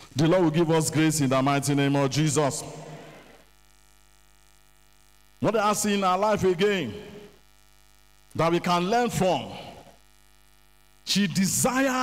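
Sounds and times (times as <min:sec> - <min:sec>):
man's voice echo: 0:00.0 - 0:03.4, 0:05.4 - 0:07.3, 0:08.4 - 0:10.0, 0:11.0 - 0:12.0
electrical mains hum: 0:00.0 - 0:12.0.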